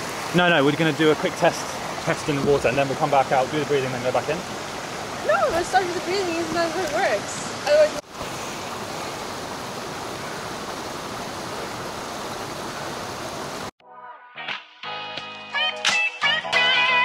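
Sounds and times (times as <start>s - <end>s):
stream flowing over rocks: 0.0s - 13.7s.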